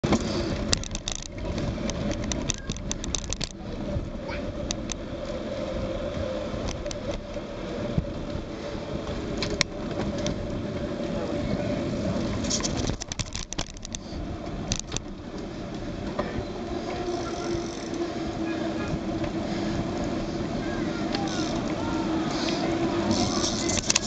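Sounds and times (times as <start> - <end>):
bicycle tyres on tarmac: 0.0 - 24.0
bike clicks and rattles: 0.0 - 24.0
wind rushing over microphone: 0.0 - 24.0.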